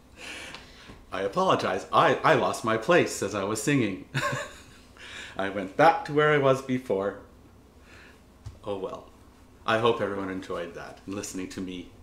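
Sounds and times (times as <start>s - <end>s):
man inhaling: 0.1s - 1.0s, 4.9s - 5.4s, 7.8s - 8.3s
man laughing while talking: 4.1s - 5.0s.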